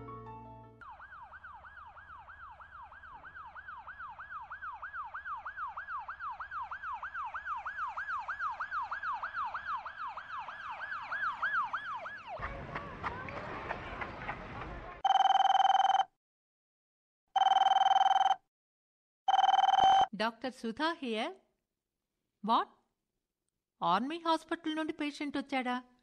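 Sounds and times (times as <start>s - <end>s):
ambulance siren wailing: 0.8s - 14.0s.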